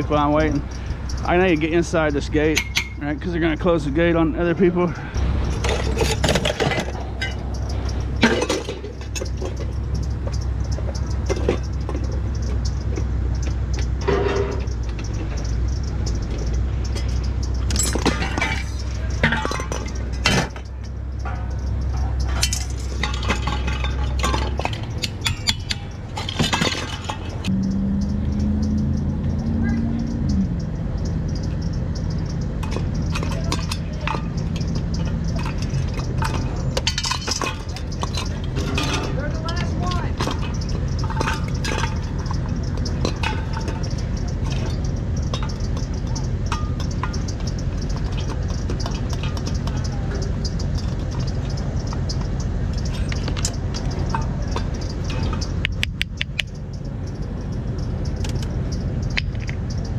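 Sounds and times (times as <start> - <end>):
low drone: 0.0 - 10.2
screwdriver clinking on metal: 0.0 - 59.9.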